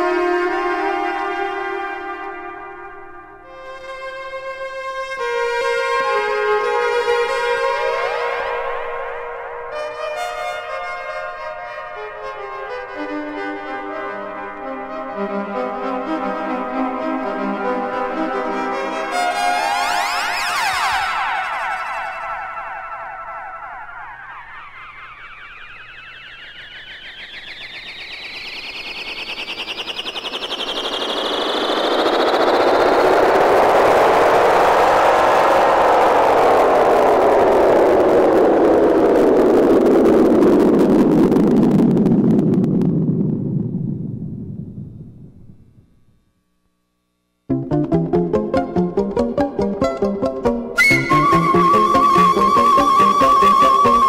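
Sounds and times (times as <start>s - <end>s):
tone sweeping upward: 13.3s - 38.9s, 47.5s - 54.0s.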